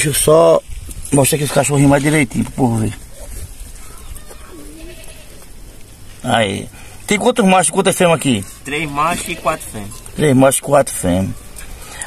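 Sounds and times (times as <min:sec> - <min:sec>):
distant goats bleating: 0:03.9 - 0:05.5, 0:08.7 - 0:10.1.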